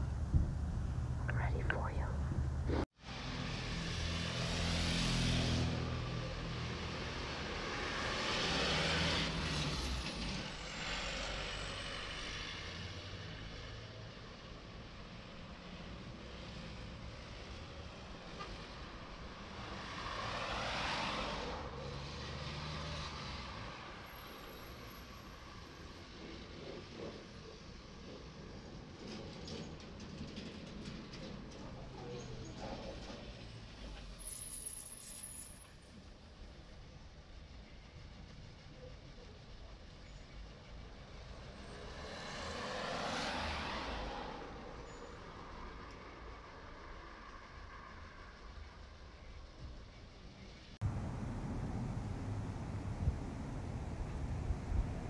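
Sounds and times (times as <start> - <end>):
vehicles passing: 0.0 - 31.9, 41.2 - 48.7, 50.8 - 55.0
car road noise from inside: 50.8 - 55.0.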